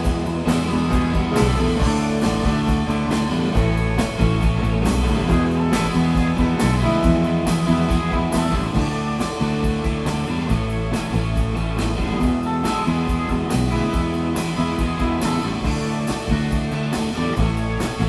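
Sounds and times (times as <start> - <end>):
distorted electric guitar: 0.0 - 18.0
drums: 0.0 - 18.0
electric bass: 0.0 - 18.0.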